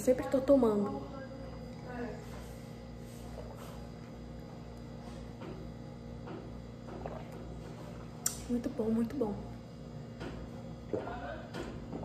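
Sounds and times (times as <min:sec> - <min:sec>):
low electrical hum: 0:00.0 - 0:12.0
soft gulps swallowing: 0:06.4 - 0:08.4.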